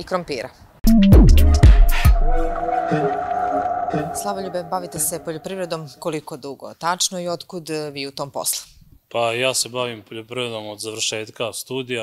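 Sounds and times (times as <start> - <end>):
swoosh and hit: 1.6 - 5.9.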